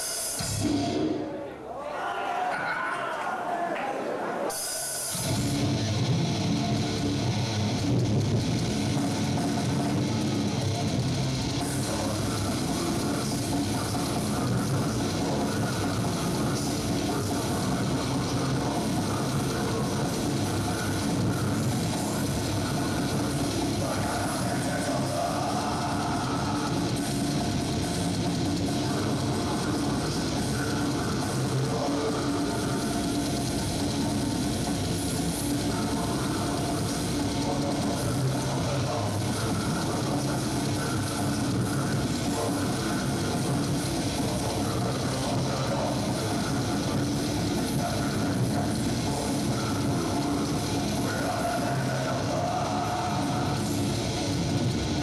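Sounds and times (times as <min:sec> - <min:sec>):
drum kit: 0:00.0 - 0:01.3, 0:04.5 - 0:55.0
distorted electric guitars: 0:00.0 - 0:01.6, 0:04.5 - 0:55.0.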